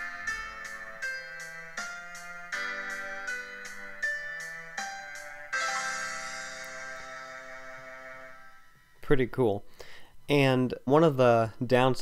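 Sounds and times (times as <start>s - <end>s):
loud piano chord: 0.0s - 8.8s
cymbal ringing: 5.6s - 9.0s.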